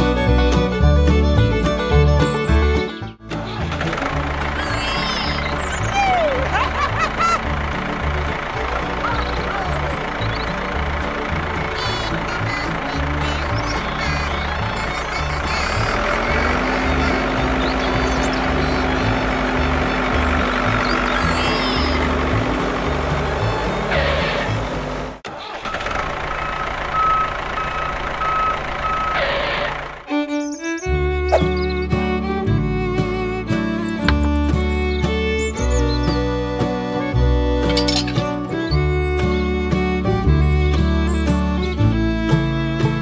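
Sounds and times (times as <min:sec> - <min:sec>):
background music: 0:00.0 - 0:24.8, 0:30.2 - 0:43.0
vehicle engine: 0:00.0 - 0:43.0
on-off beeping tone: 0:25.6 - 0:29.4.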